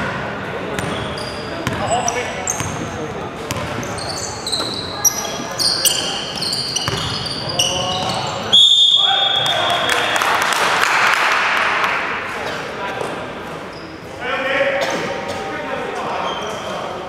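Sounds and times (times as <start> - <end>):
sneakers squeaking: 0.0 - 9.9, 13.0 - 14.1, 16.2 - 16.8
basketball bouncing: 0.8 - 1.0, 1.6 - 8.4
referee's whistle blast: 8.4 - 10.2.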